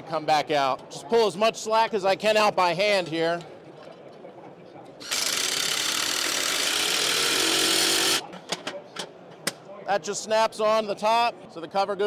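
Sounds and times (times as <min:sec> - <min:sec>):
cordless drill running: 0:05.0 - 0:08.2.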